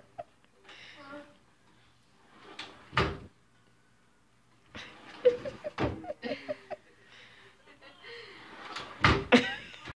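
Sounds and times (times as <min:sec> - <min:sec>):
wooden drawer sliding shut: 0:02.3 - 0:03.3, 0:08.5 - 0:09.3
drawer banging closed: 0:02.4 - 0:03.3, 0:05.7 - 0:06.0, 0:08.6 - 0:09.4.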